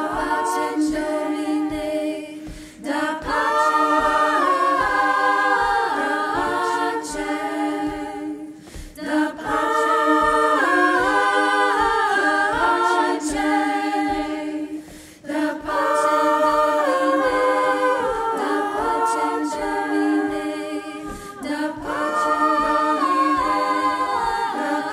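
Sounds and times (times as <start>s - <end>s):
women's choir singing a cappella: 0.0s - 24.9s.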